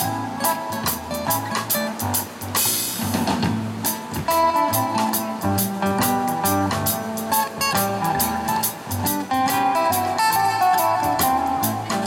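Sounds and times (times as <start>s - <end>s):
drum kit steady beat: 0.0s - 12.0s
strummed acoustic guitars: 0.0s - 12.0s
upright bass: 0.0s - 12.0s.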